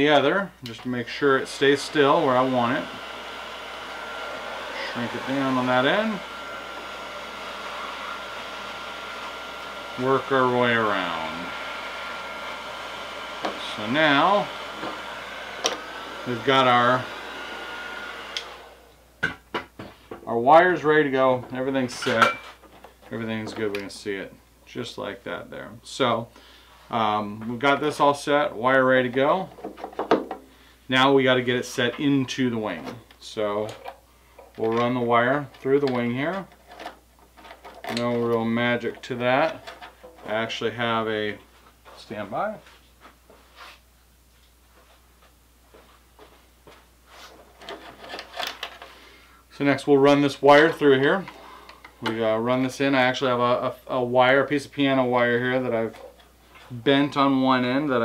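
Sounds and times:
heat gun blower winding down: 0.0s - 19.2s, 48.5s - 56.2s.

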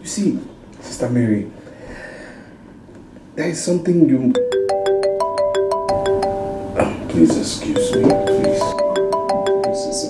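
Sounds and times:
phone melodic ringtone: 4.4s - 7.1s, 7.7s - 10.0s.

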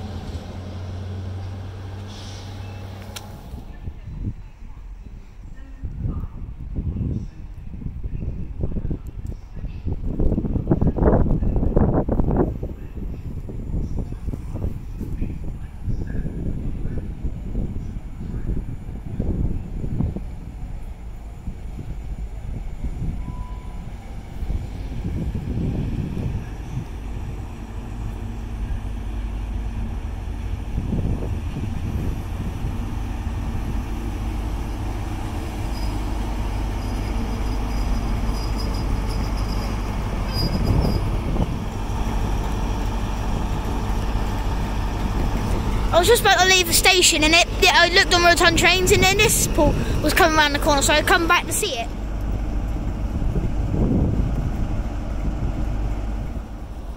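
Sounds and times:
diesel engine low hum: 0.0s - 56.9s
train rumble: 0.0s - 56.9s.

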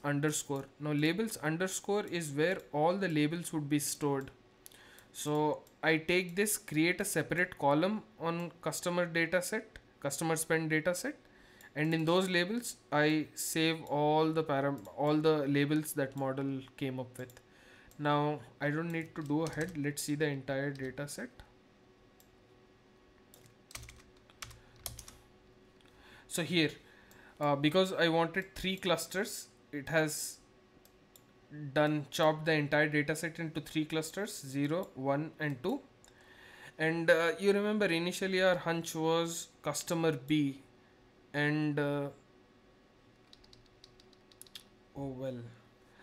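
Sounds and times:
computer keyboard typing: 18.8s - 20.0s, 23.3s - 25.2s, 43.2s - 44.6s
faint keyboard keystrokes: 23.3s - 25.2s.

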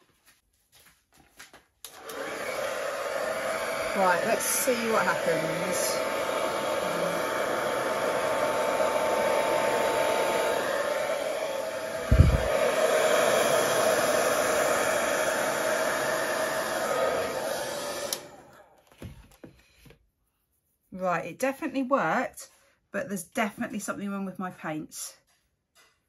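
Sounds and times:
hair dryer blowing: 1.8s - 19.1s.

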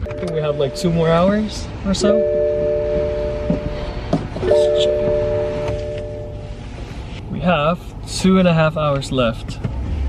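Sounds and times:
road rumble: 0.0s - 10.0s
horn chord blasts: 2.0s - 6.6s.

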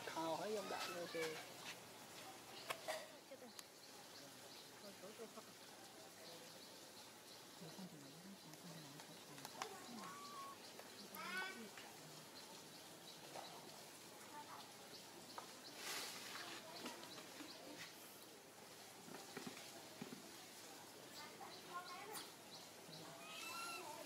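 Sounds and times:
baby monkey squeaking cries: 23.2s - 24.0s.

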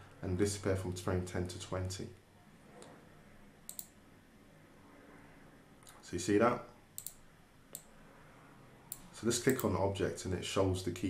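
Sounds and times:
faint room hiss: 0.0s - 11.0s
computer mouse clicking: 3.7s - 4.0s, 7.0s - 7.9s, 8.9s - 9.7s.

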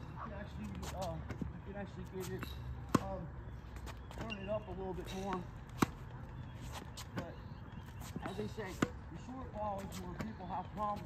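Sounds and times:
tennis balls fired and bouncing: 2.3s - 3.3s, 4.1s - 6.1s.

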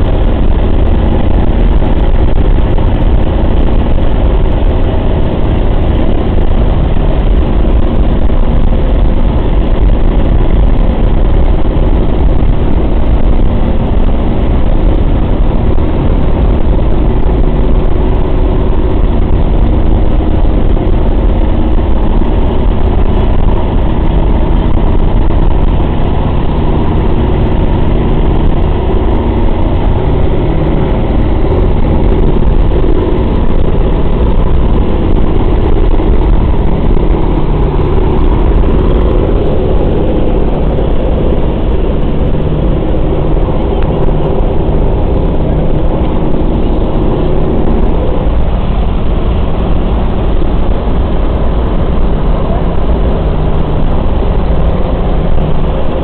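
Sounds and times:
radial engines droning: 0.0s - 56.0s.

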